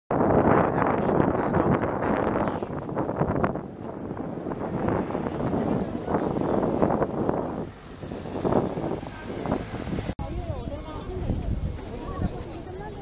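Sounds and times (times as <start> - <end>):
wind buffeting microphone: 0.1 - 13.0.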